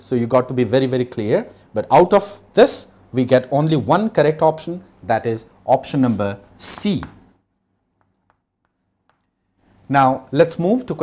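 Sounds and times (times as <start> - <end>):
man speaking: 0.0 - 7.2, 9.9 - 11.0
chalk tapping on chalkboard: 6.6 - 9.5.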